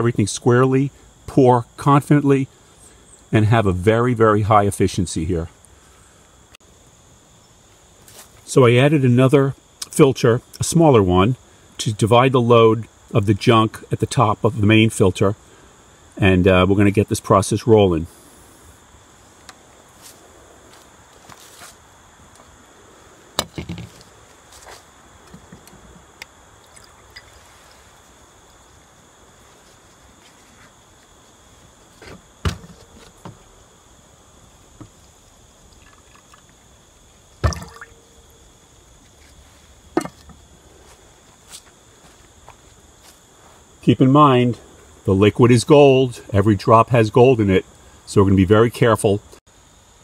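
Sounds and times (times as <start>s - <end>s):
liquid trickling and dripping: 26.2s - 27.5s, 35.6s - 36.6s, 37.4s - 38.1s
glassware knocks: 40.0s - 40.2s.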